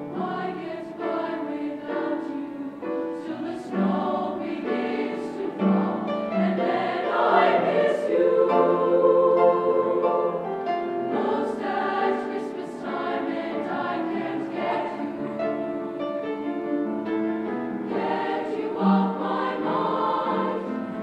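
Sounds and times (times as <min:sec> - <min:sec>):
youth choir singing: 0:00.0 - 0:16.3, 0:17.9 - 0:21.0.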